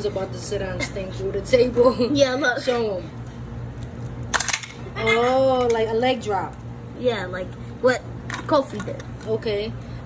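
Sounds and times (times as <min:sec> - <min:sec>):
plastic table clattering apart: 0:04.3 - 0:04.8
plastic toy slammed down: 0:04.3 - 0:04.8.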